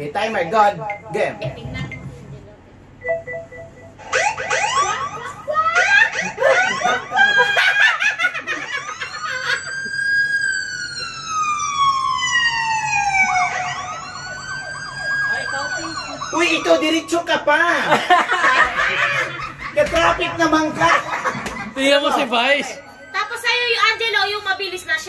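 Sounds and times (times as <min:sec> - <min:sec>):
siren whooping and wailing: 0:04.0 - 0:17.6, 0:22.4 - 0:24.7.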